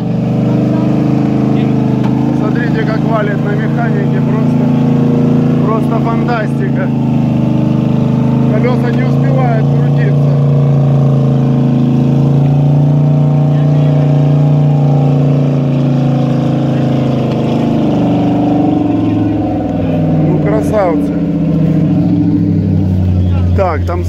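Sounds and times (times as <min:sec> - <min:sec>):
engine revving in mud: 0:00.0 - 0:24.0.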